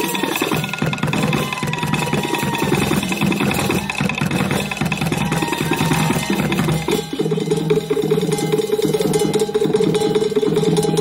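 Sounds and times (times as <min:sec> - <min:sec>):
rapid dense drumming: 0:00.0 - 0:11.0.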